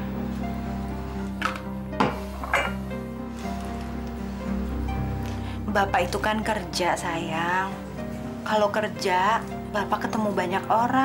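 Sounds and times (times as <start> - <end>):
soft dramatic background music: 0.0 - 11.0.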